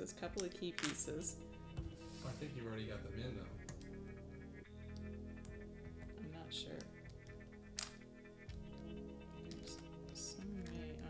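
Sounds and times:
background music: 0:00.0 - 0:11.0
puzzle piece click: 0:07.1 - 0:08.0.

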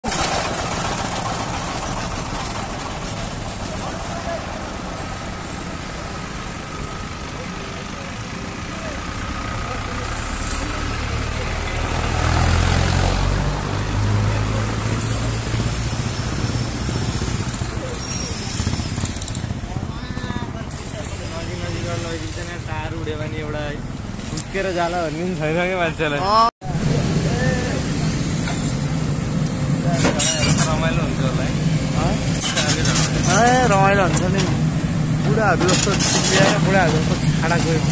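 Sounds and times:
diesel engine running: 0:00.0 - 0:37.9.

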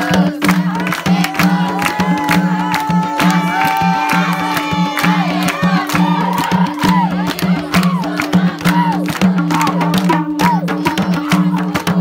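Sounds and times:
hand drum playing folk rhythm: 0:00.0 - 0:12.0
people singing folk song: 0:00.0 - 0:12.0
hand-clapping: 0:00.1 - 0:12.0.

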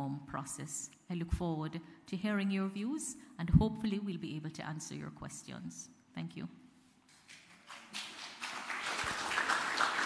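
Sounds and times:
audience applause: 0:07.3 - 0:10.0.

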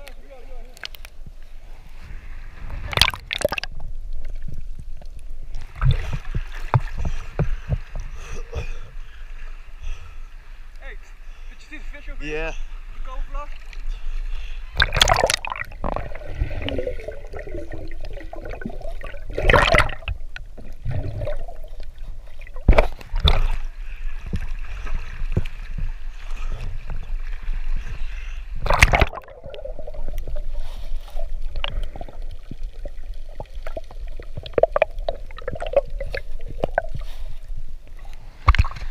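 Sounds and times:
water sloshing and gurgling: 0:00.1 - 0:10.8, 0:12.6 - 0:38.9
loud water splashes: 0:14.8 - 0:20.2.

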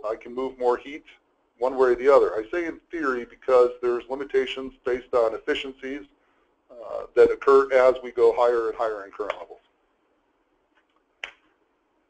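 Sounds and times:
sharp click: 0:10.8 - 0:11.5.

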